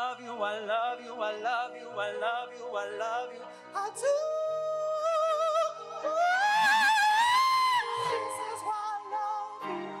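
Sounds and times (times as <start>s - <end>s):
soft steady accompaniment: 0.0s - 10.0s.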